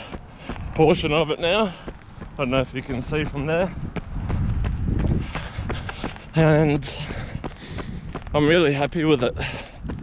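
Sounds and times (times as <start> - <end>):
running footfalls on path: 0.0 - 10.0
wind rumbling on microphone: 0.0 - 10.0.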